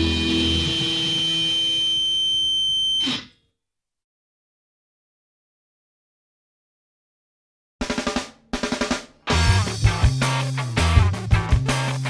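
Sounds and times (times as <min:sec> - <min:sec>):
electric guitar chord ringing: 0:00.0 - 0:02.2, 0:09.3 - 0:11.9
high-pitched feedback whine: 0:00.0 - 0:03.4.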